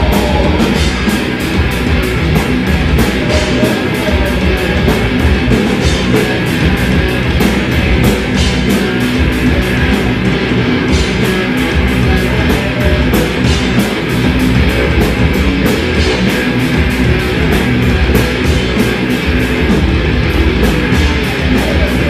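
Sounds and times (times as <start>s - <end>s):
live metal band playing: 0.0s - 22.0s.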